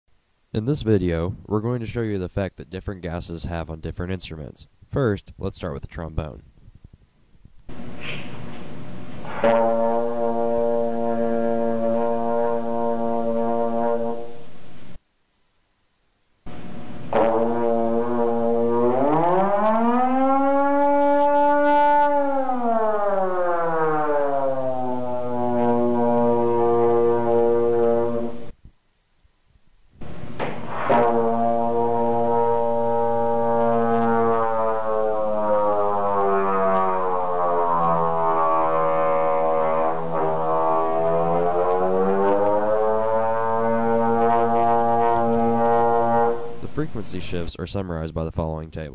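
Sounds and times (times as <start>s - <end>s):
trombone long held notes: 7.7s - 15.0s, 16.5s - 28.6s, 30.0s - 47.4s.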